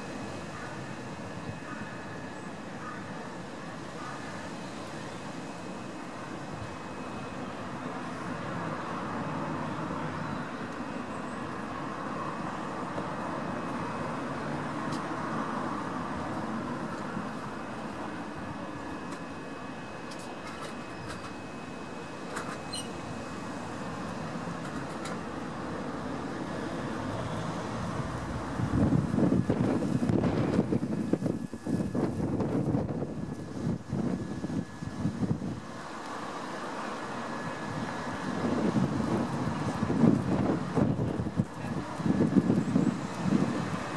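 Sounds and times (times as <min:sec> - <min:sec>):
wind buffeting microphone: 0:27.9 - 0:35.7, 0:37.6 - 0:43.9.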